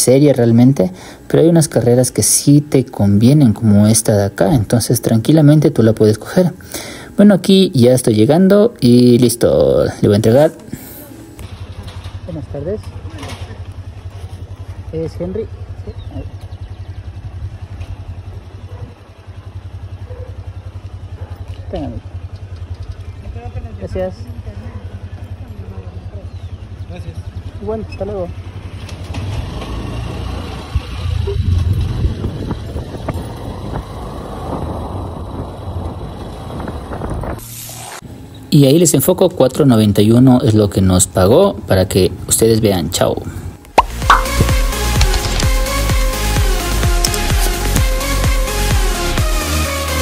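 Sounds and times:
road and wind noise: 0:00.0 - 0:48.3
motorcycle engine idling: 0:06.1 - 0:37.3, 0:43.2 - 0:48.9.

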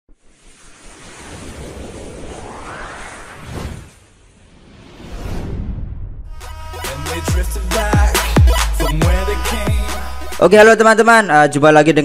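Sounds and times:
whoosh of rushing noise: 0:00.2 - 0:06.4.

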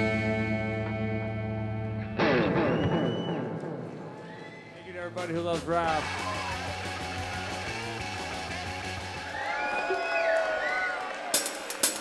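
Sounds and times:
electric guitars ringing chord: 0:00.0 - 0:02.8
high whistle: 0:02.2 - 0:03.6.

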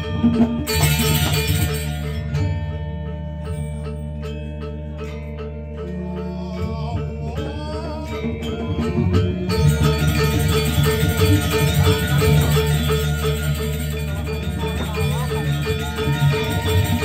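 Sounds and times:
low sustained tone: 0:00.0 - 0:17.0
struck metallophone notes: 0:00.0 - 0:17.0.

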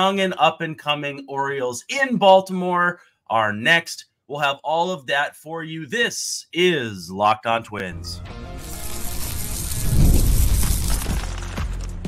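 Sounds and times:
hissing whoosh with deep boom: 0:08.8 - 0:11.1.

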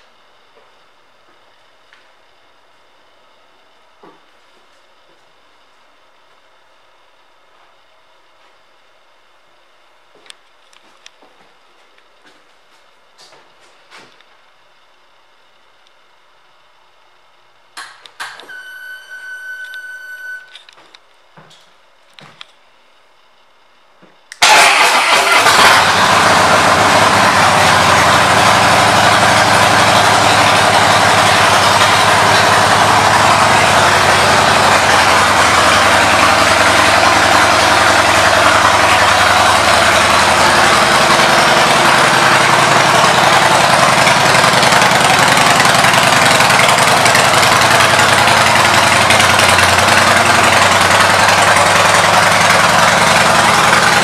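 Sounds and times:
motorcycle engine starting and idling: 0:24.3 - 0:54.0.

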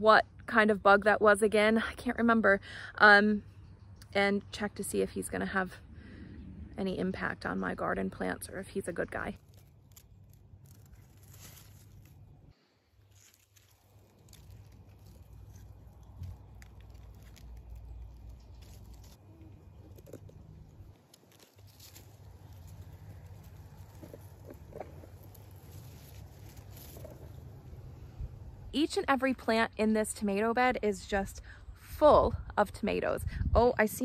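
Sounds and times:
low microphone rumble: 0:05.3 - 0:09.6, 0:21.6 - 0:28.8
plant leaves rustling and crackling: 0:07.2 - 0:28.9.

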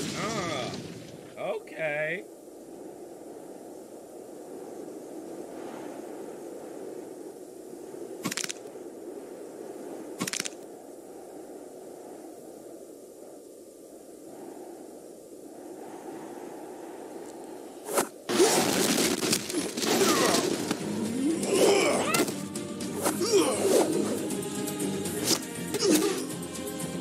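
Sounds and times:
sharp cracks: 0:00.0 - 0:01.4, 0:08.2 - 0:08.8, 0:10.2 - 0:10.7, 0:17.2 - 0:24.0
steady ambient noise: 0:00.0 - 0:18.4.

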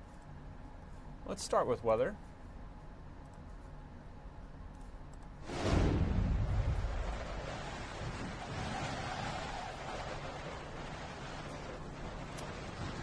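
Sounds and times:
loud whoosh: 0:05.4 - 0:11.6
wind-like rushing noise: 0:05.4 - 0:13.0.

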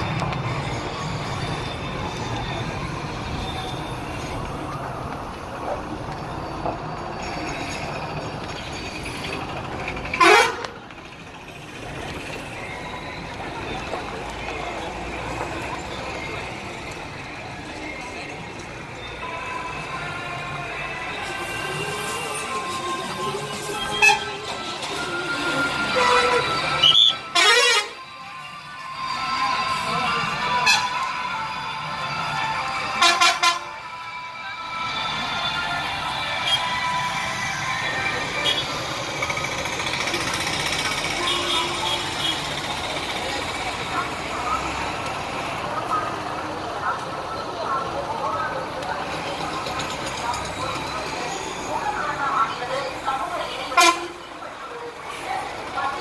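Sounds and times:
vehicle engines: 0:00.0 - 0:56.0
vehicle horns: 0:10.1 - 0:10.8, 0:21.3 - 0:24.6, 0:25.5 - 0:28.1, 0:30.5 - 0:31.1, 0:32.9 - 0:33.8, 0:36.3 - 0:37.0, 0:38.3 - 0:38.9, 0:41.0 - 0:42.6, 0:53.6 - 0:54.3
murmur of voices: 0:10.7 - 0:56.0.

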